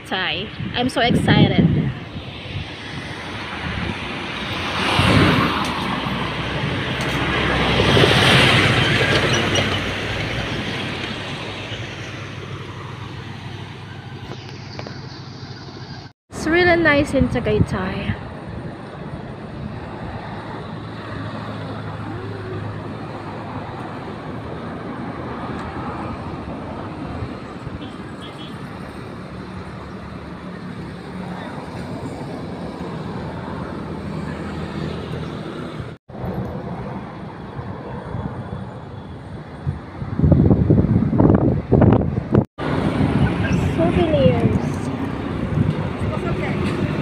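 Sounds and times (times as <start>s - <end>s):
road traffic noise: 0.0s - 47.0s
voices: 43.2s - 45.1s.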